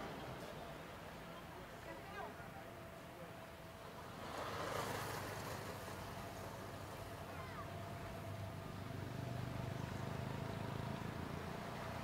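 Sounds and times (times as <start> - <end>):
street ambience: 0.0 - 12.0
motor vehicle passing: 4.2 - 12.0.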